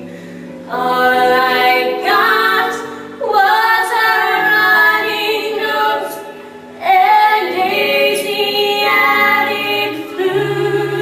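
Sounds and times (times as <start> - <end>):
group of voices singing in harmony: 0.0 - 11.0.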